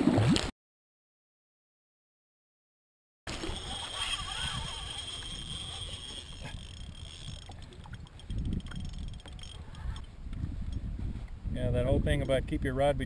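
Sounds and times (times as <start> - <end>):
wind buffeting microphone: 3.4 - 13.0.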